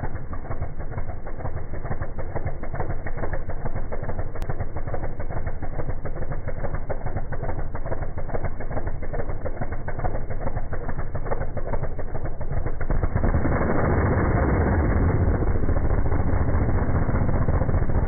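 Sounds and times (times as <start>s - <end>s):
drag car engine idling: 0.0s - 18.0s.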